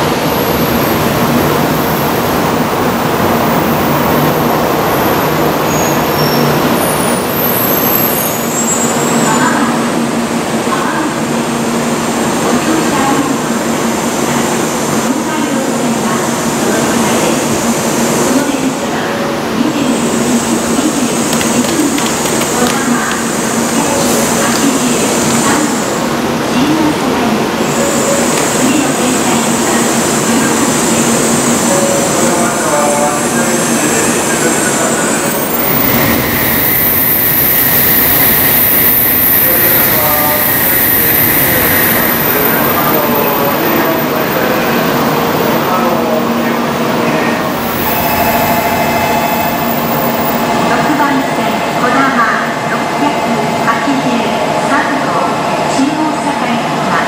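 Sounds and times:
train equipment humming: 0.0 - 57.0
high-pitched ringing: 35.2 - 44.2, 47.6 - 51.8.

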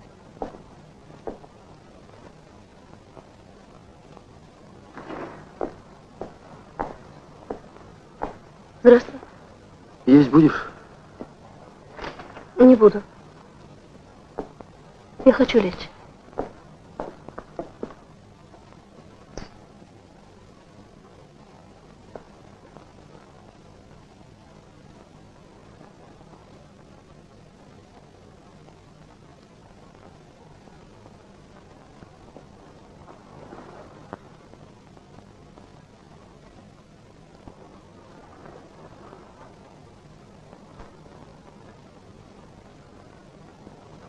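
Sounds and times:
low hum: 0.0 - 23.7
film soundtrack hiss: 0.0 - 44.0
footsteps on floor: 0.4 - 1.6, 4.9 - 8.5, 14.4 - 15.7, 16.4 - 18.0.

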